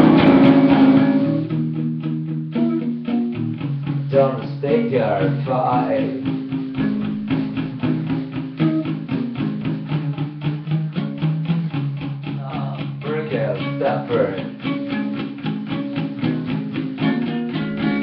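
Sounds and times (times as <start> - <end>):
electric guitar strumming: 0.0 - 18.0.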